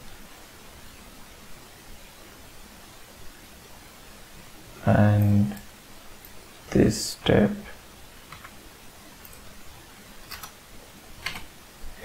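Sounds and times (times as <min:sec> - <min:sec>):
computer keyboard keystrokes: 0:08.3 - 0:08.6, 0:10.3 - 0:10.6, 0:11.2 - 0:11.5.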